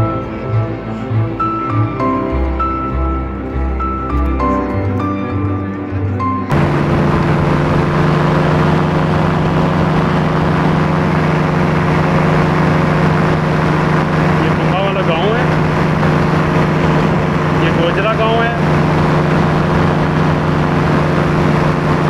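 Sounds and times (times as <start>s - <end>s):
paramotor engine drone: 0.0s - 22.0s
rushing wind: 6.5s - 22.0s.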